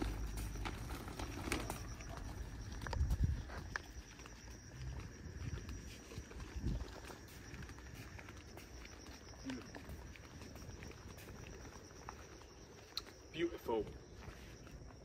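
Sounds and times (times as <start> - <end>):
footsteps on garden path: 0.0 - 15.0.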